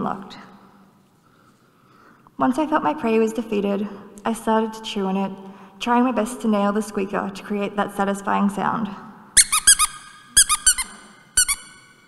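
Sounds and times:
squeaky dog toy squeaks: 9.4s - 12.0s.

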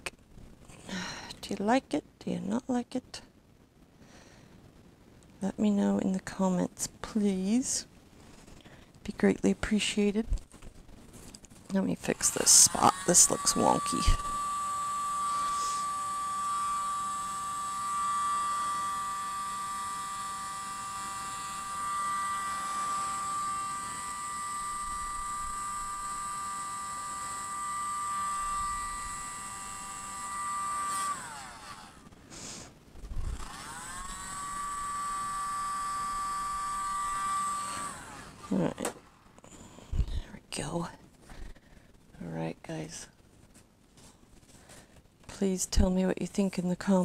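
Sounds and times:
mini leaf blower motor whine: 12.0s - 40.1s.

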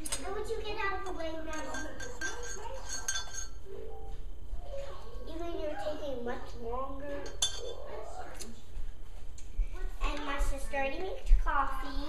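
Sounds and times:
metal spoon clinking against cup: 1.5s - 3.6s, 7.2s - 7.8s.

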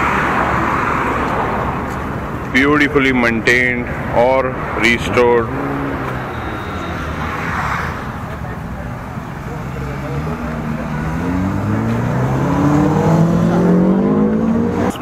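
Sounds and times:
vehicle engine speeding up: 9.7s - 15.0s.

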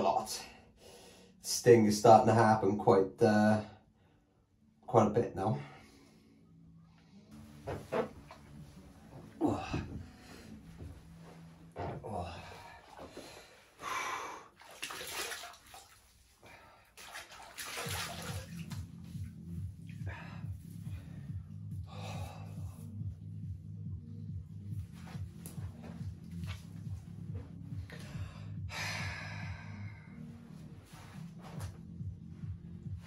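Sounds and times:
background music with low beat: 6.8s - 13.8s, 17.5s - 33.0s
bath water splashing: 14.5s - 19.3s.

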